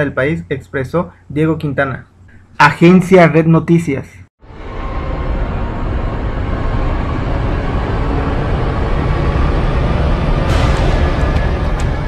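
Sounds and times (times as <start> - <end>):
deep steady rumble: 4.4 - 12.0.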